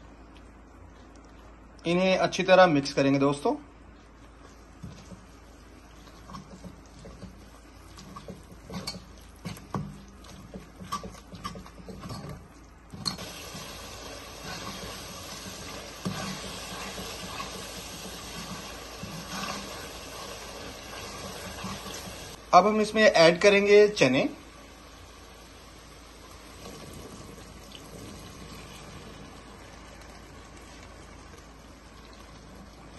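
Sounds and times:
masala sizzling in oil: 1.8 - 32.9
ladle scraping metal pan: 8.0 - 22.4.

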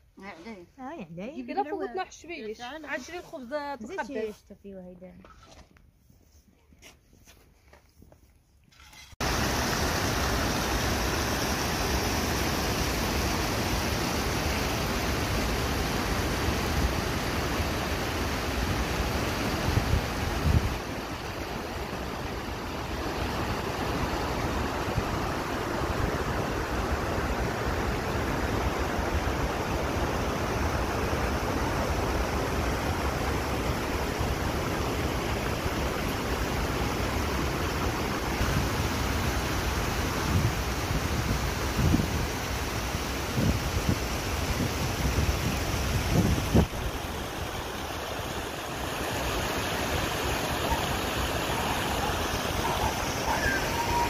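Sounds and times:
river water rushing over weir: 9.2 - 54.0.

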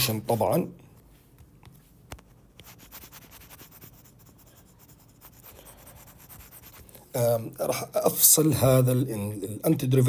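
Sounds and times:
stylus scratching on screen: 2.1 - 7.1.

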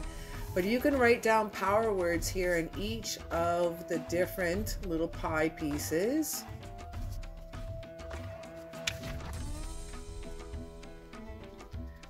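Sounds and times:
celtic-style instrumental music: 6.5 - 12.0.

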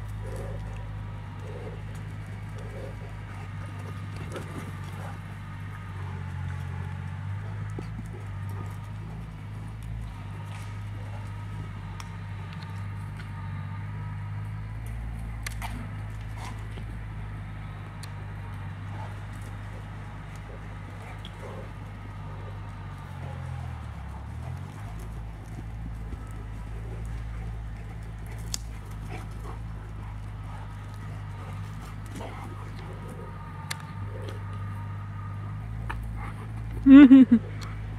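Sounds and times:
dog paws pattering on dirt: 0.0 - 37.9
steady low hum: 0.0 - 37.9.

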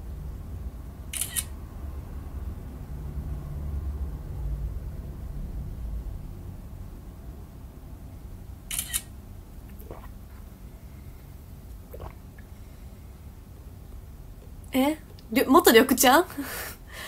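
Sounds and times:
low steady rumble: 0.0 - 17.0
sucking through a drinking straw: 9.7 - 10.5, 11.8 - 12.5.

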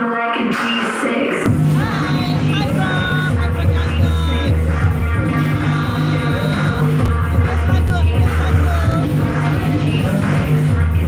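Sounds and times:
steady bass line: 1.5 - 11.0.

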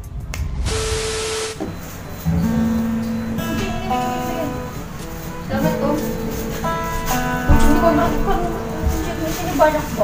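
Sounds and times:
steady tone: 0.0 - 8.9
loud hiss: 0.2 - 3.4.

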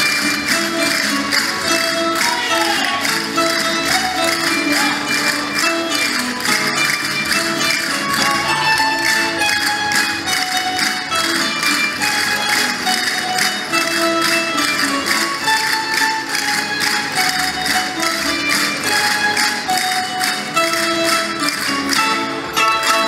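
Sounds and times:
plucked string instruments: 0.0 - 23.0
quick percussion beat: 0.0 - 23.0.

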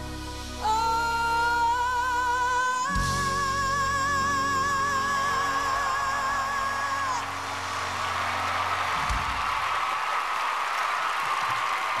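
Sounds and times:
audience applauding and cheering: 6.3 - 12.0.

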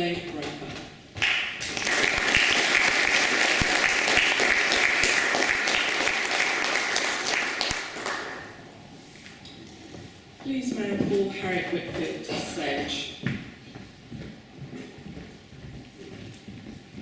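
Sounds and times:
audience applauding: 1.2 - 8.6.

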